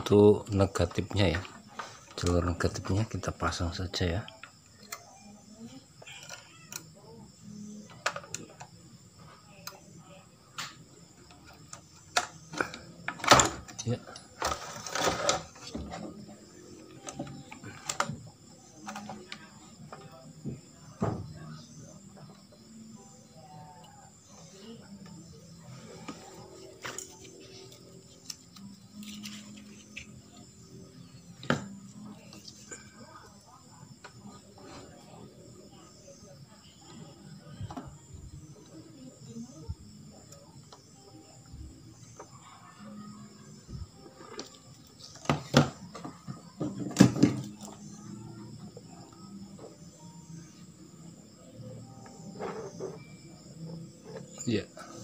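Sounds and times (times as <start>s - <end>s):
faint voices: 0.0s - 55.0s
music: 0.0s - 55.0s.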